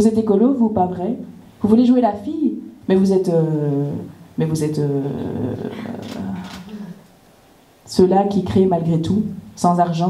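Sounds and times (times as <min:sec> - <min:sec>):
woman's gravelly hesitant voice: 0:04.8 - 0:07.0.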